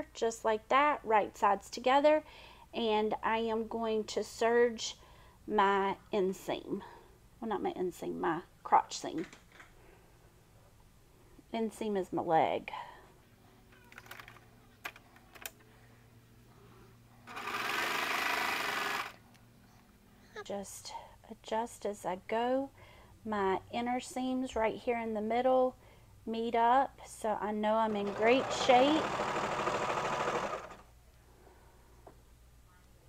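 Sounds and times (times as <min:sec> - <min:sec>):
serger sewing machine running: 0:17.3 - 0:19.2, 0:27.8 - 0:30.8.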